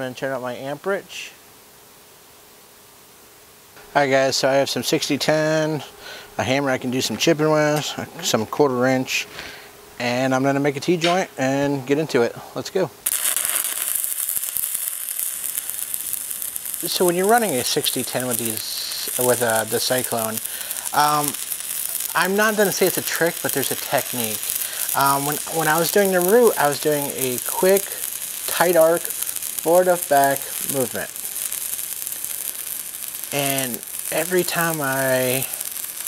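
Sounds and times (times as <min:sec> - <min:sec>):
welding arc crackling: 0:13.0 - 0:36.0.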